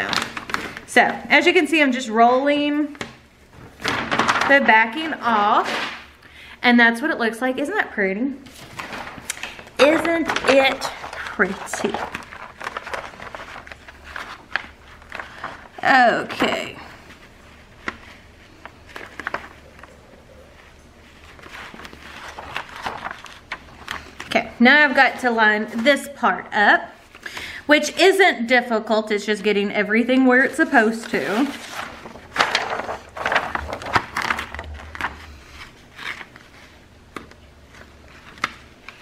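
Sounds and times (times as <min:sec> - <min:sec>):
plastic sheet crackling: 0:00.0 - 0:01.0, 0:02.8 - 0:06.1, 0:08.5 - 0:24.4, 0:30.4 - 0:39.0.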